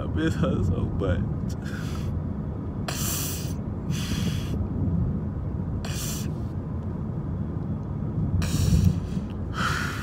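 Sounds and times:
man sniffing hard: 2.8s - 4.6s, 5.8s - 6.4s, 8.4s - 10.0s.

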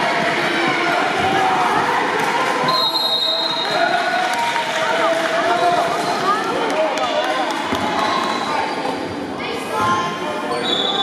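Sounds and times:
chatter of players and spectators: 0.0s - 11.0s.

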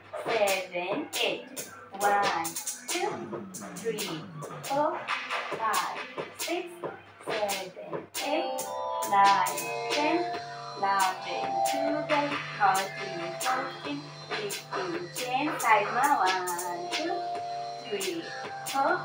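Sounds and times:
person singing: 0.2s - 19.0s
steady percussive beat: 0.2s - 19.0s
sustained tones: 8.2s - 19.0s.

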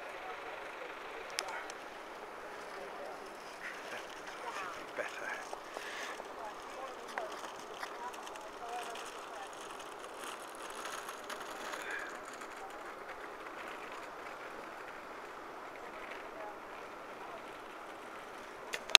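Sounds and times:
indistinct chatter of passers-by: 0.0s - 18.9s.

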